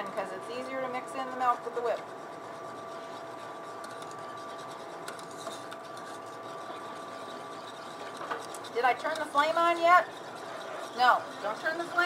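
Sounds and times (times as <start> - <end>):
steady two-tone hum: 0.0 - 12.0
wire whisk scraping a saucepan: 0.5 - 12.0.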